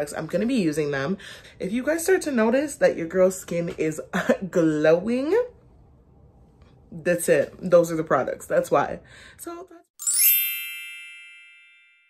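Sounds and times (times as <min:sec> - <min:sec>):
bright chime: 0:10.0 - 0:12.0.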